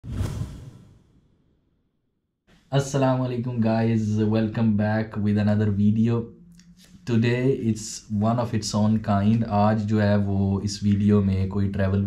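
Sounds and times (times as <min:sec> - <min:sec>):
whoosh sound effect: 0:00.0 - 0:01.3.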